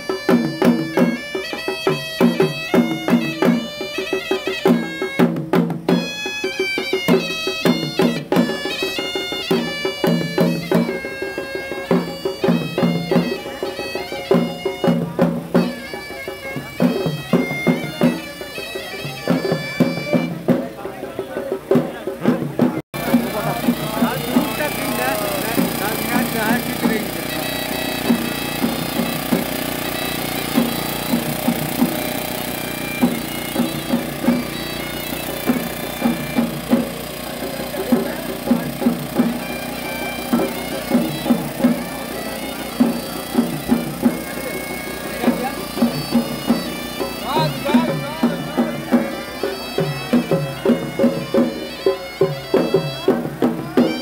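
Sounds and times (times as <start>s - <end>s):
loud drum beats: 0.0s - 54.0s
shrill reed pipe melody: 0.0s - 54.0s.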